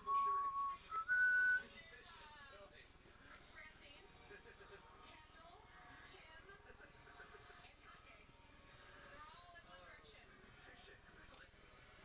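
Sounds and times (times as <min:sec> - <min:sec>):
rising whistle-like notes: 0:00.0 - 0:01.6.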